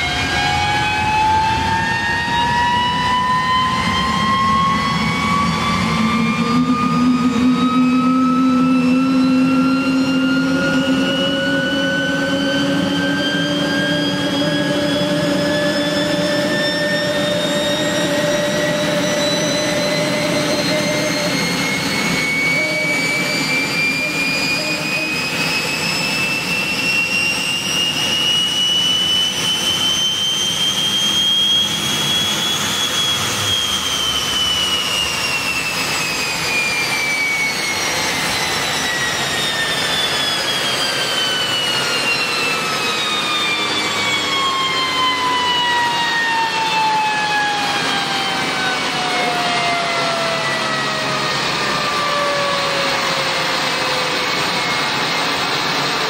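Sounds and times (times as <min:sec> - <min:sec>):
helicopter turboshaft engine whine: 0:00.0 - 0:56.0.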